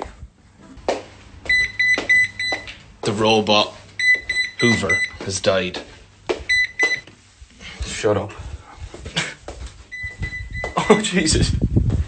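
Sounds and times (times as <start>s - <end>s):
high electronic alert beeps: 1.5s - 2.6s, 4.0s - 5.2s, 6.5s - 7.0s, 9.9s - 11.2s.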